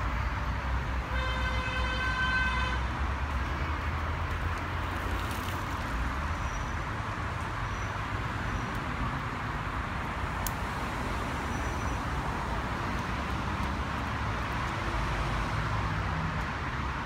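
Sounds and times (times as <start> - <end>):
distant traffic rumble: 0.0 - 17.0.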